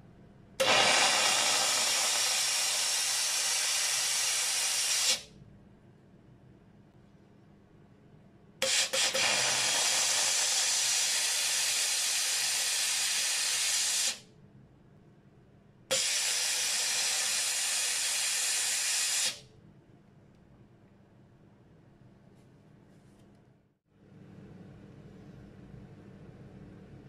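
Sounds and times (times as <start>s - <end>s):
steam nozzle sputter: 0.6s - 5.2s, 8.6s - 14.2s, 15.9s - 19.4s
steam cleaner hissing: 0.6s - 5.3s, 8.6s - 14.2s, 15.9s - 19.4s.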